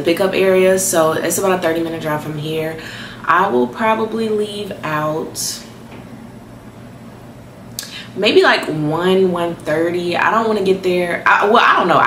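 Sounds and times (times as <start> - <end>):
room noise: 0.0 - 12.0
person inhaling: 2.8 - 3.3, 7.8 - 8.2.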